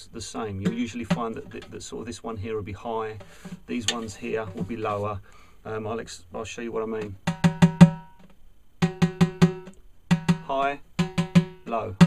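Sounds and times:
fingertip taps on snare drum head: 8.8 - 11.6.

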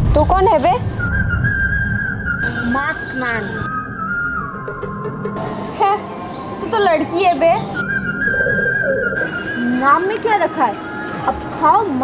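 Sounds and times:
swooping whistle-like tones: 0.9 - 5.5, 7.6 - 11.4.

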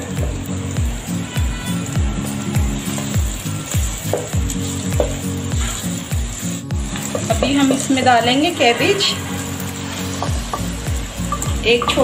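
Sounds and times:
background music with drum beat: 0.0 - 12.0
vegetables sizzling in a wok: 0.0 - 12.0.

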